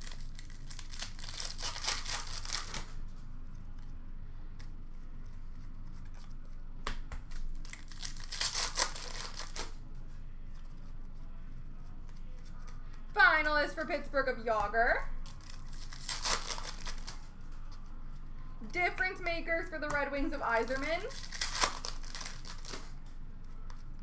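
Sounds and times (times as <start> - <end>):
wrappers tearing and crinkling: 0.0 - 3.0, 7.3 - 9.8, 15.1 - 17.6, 20.6 - 23.0.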